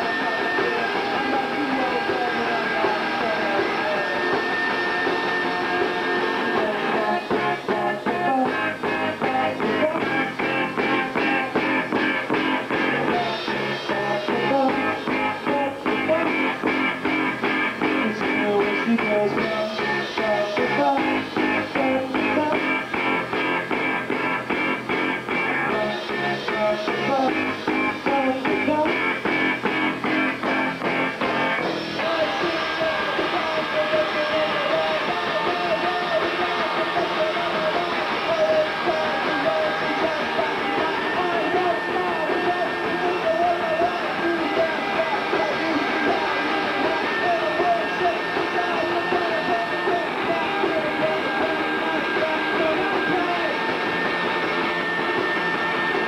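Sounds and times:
live rock band playing: 0.0 - 56.0.

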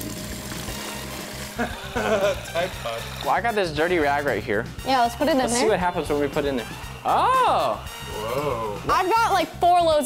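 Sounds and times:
water pouring into a plastic bucket: 0.0 - 3.6
background music: 0.0 - 10.0.

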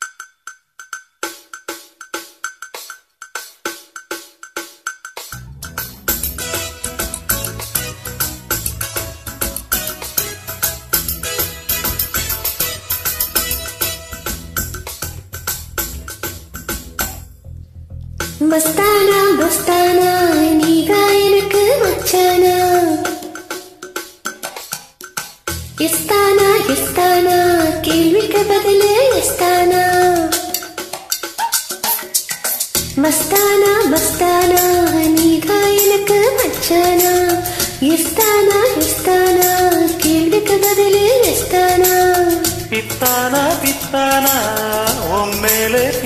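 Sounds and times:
metallic percussion strikes: 0.0 - 17.4
sharp ringing percussion hits: 5.2 - 10.3
person singing: 5.4 - 7.6, 25.8 - 30.8, 33.0 - 46.0.

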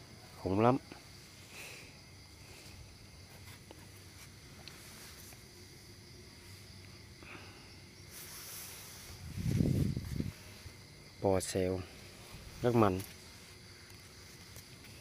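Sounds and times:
night insects trilling: 0.0 - 15.0.

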